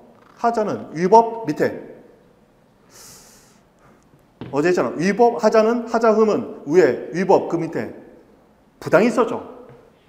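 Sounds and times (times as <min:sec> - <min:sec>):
man's sharp breath: 0:02.9 - 0:03.7.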